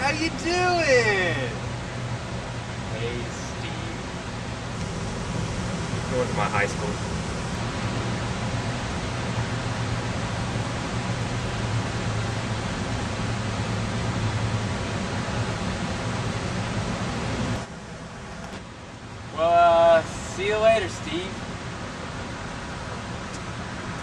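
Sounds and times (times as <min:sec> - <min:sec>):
steady outdoor hiss: 0:00.0 - 0:24.0
low hum: 0:01.5 - 0:19.4.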